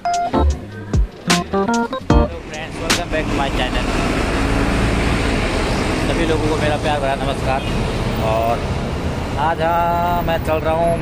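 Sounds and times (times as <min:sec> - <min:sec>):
road traffic rumble: 0:00.4 - 0:11.0.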